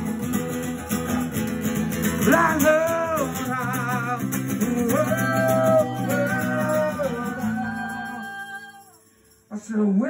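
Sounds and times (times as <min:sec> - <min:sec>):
acoustic guitar: 0:00.0 - 0:10.0
person singing amplified: 0:02.3 - 0:08.9.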